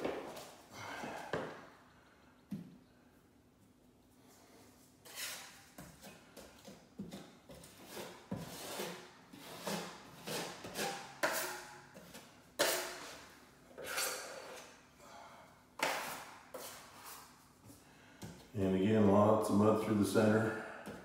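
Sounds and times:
drywall knife scraping compound: 4.4s - 14.8s, 15.8s - 17.4s.

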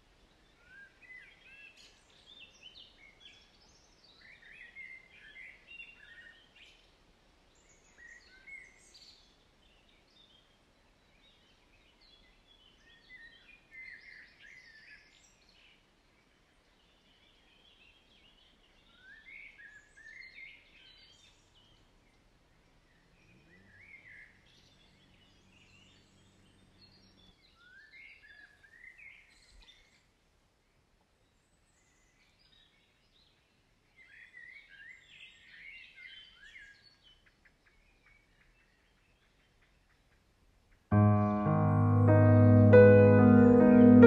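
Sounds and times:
faint steady background hiss: 0.0s - 27.4s, 36.6s - 44.0s
faint birdsong chirps: 0.0s - 44.0s.

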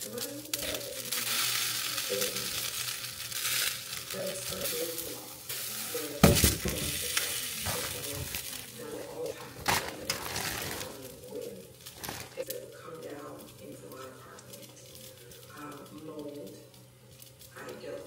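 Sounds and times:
eggs sizzling in a frying pan: 0.0s - 18.0s.

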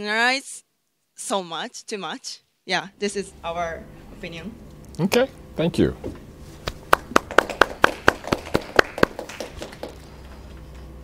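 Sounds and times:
hand clapping: 6.6s - 10.4s.

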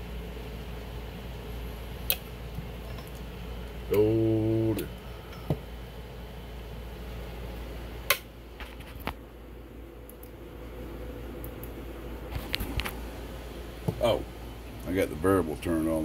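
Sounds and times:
low hum and hiss: 0.0s - 16.0s
faint steady tone: 2.8s - 5.9s.

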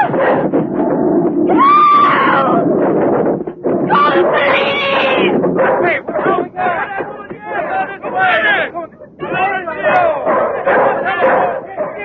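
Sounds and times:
dense noisy din: 0.0s - 12.0s
high wailing screams: 1.5s - 2.6s.

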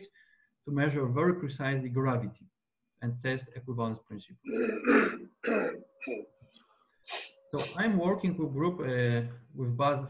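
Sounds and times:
man clearing throat and coughing: 4.5s - 6.2s.

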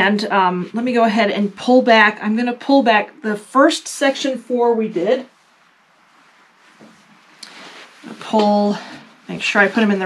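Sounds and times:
rustling of fabric strips: 0.0s - 10.0s.

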